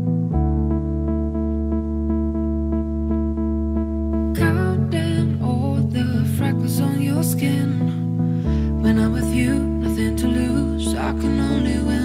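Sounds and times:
chillout house music: 0:00.0 - 0:12.0.

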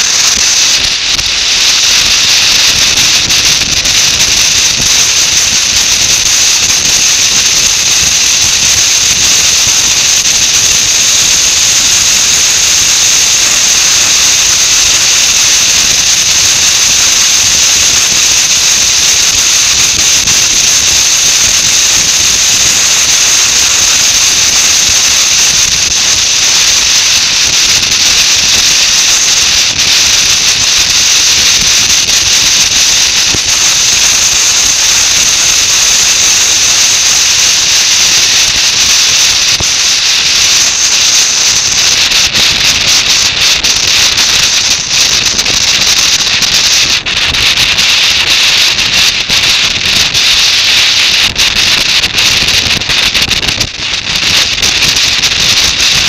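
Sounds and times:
wind hissing over microphone: 0:00.0 - 0:56.0.

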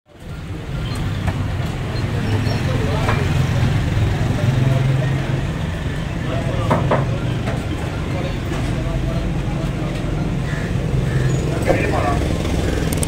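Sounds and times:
sharp knocks: 0:06.6 - 0:07.6.

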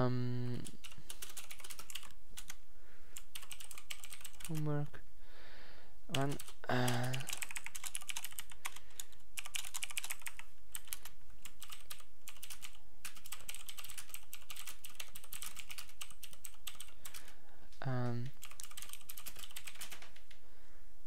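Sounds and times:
computer keyboard typing: 0:00.6 - 0:02.6, 0:03.2 - 0:04.7, 0:06.1 - 0:17.4, 0:18.2 - 0:20.4.

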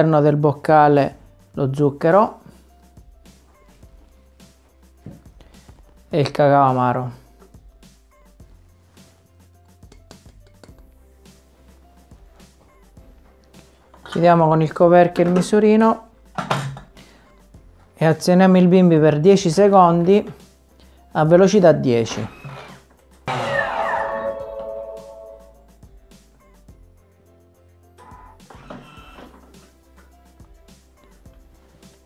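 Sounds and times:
faint background music: 0:00.0 - 0:32.0.

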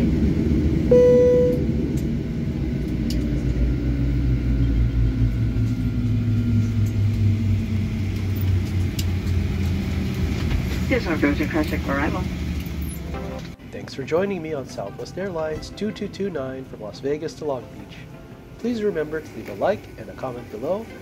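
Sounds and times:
jet engines humming: 0:00.0 - 0:21.0.

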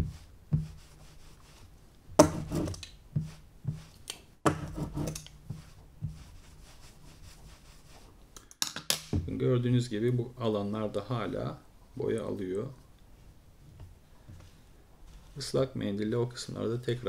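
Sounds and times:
sponge rubbing over foil plate: 0:04.7 - 0:08.1.

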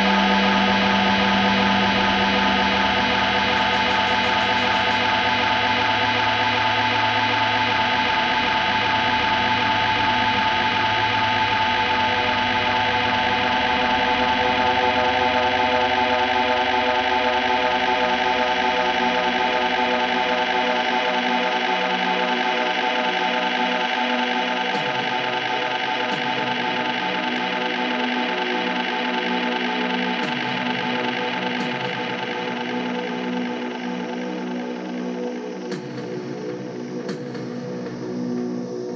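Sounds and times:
electric guitar and keyboard drone: 0:00.0 - 0:38.9.

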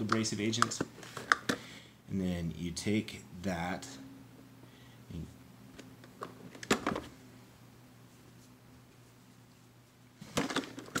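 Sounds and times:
faint steady hum: 0:00.0 - 0:11.0
plastic knocks and clatter: 0:10.2 - 0:11.0.

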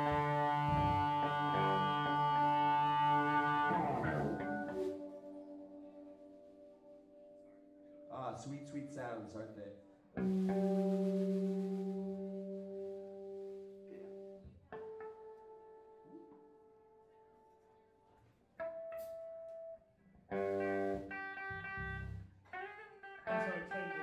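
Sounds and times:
electric guitar notes ringing: 0:00.0 - 0:17.6, 0:18.6 - 0:24.0.

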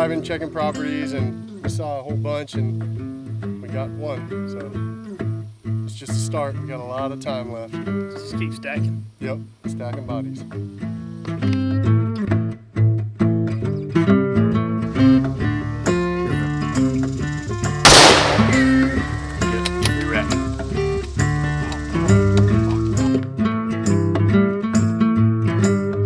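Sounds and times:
gunshot: 0:17.9 - 0:19.0.

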